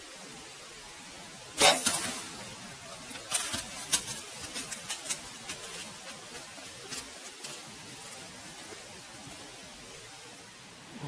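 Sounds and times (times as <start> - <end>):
deer running through dry leaves: 1.6 - 9.7.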